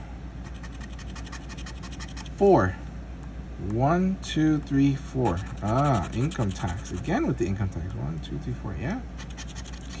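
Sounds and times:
plastic scratcher scraping ticket: 0:05.3 - 0:07.1.

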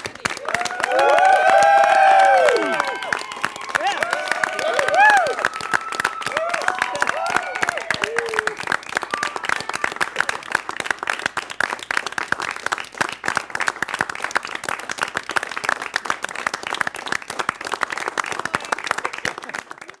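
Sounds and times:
group of people clapping: 0:00.0 - 0:20.0.

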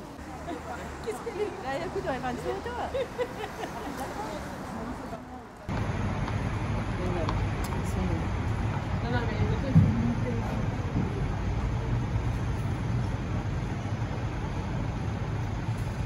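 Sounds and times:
passers-by talking: 0:00.0 - 0:05.8, 0:06.8 - 0:13.2
low traffic rumble: 0:00.0 - 0:16.0.

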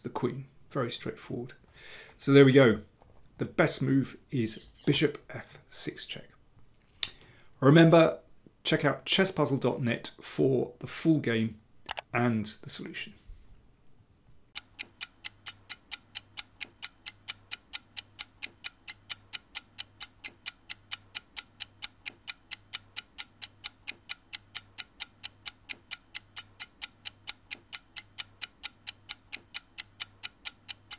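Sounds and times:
clock-like ticking: 0:14.6 - 0:30.9.

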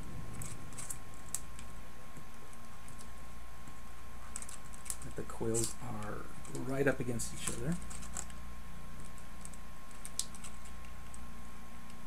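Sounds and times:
wire twisting metallic ticks: 0:07.5 - 0:08.4.

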